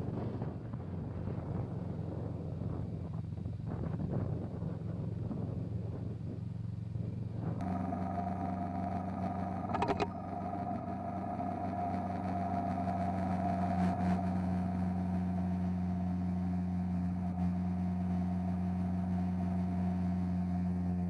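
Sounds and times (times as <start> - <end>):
motorcycle engine running: 0.8 - 21.0.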